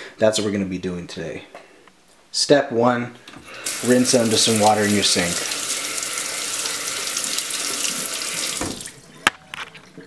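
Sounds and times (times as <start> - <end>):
faucet water splashing into sink: 3.6 - 10.0.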